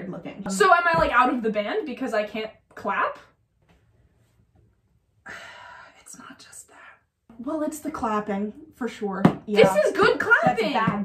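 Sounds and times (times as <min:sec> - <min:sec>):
breathy whispering: 0:05.3 - 0:07.2
person speaking: 0:09.2 - 0:11.0.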